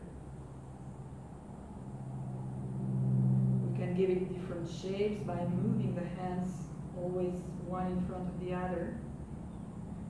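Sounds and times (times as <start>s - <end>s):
steady low two-tone hum: 0.0s - 10.0s.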